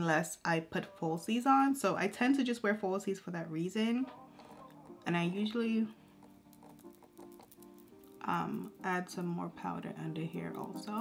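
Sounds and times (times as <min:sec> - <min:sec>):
quiet background music: 0:00.0 - 0:11.0
makeup sponge patting face: 0:06.1 - 0:09.3.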